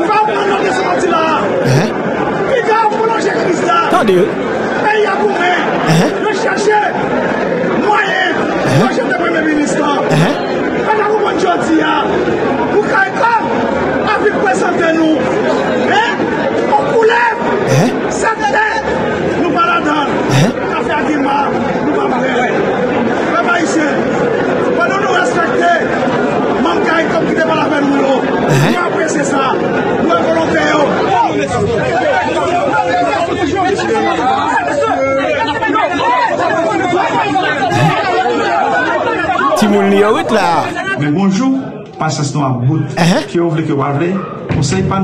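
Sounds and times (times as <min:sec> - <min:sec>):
man speaking loudly: 0:01.7 - 0:01.9, 0:03.9 - 0:04.4, 0:05.9 - 0:06.2, 0:08.7 - 0:09.0, 0:10.1 - 0:10.4, 0:17.7 - 0:18.0, 0:20.3 - 0:20.6, 0:28.5 - 0:28.8, 0:37.7 - 0:38.0, 0:39.6 - 0:40.8, 0:43.0 - 0:43.4
voices chattering: 0:01.7 - 0:02.0, 0:03.9 - 0:04.7, 0:05.9 - 0:06.3, 0:08.7 - 0:09.1, 0:10.1 - 0:10.6, 0:20.3 - 0:20.8, 0:37.7 - 0:38.2, 0:39.6 - 0:41.0, 0:43.0 - 0:43.3.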